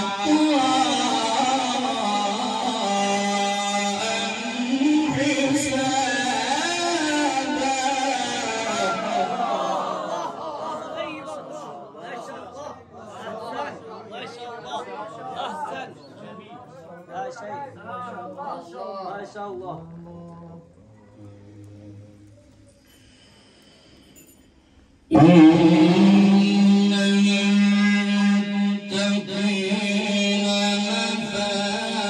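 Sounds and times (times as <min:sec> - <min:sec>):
men's voices overlapping: 0:00.0 - 0:20.2
man reciting melodically: 0:00.0 - 0:22.3, 0:25.1 - 0:32.0.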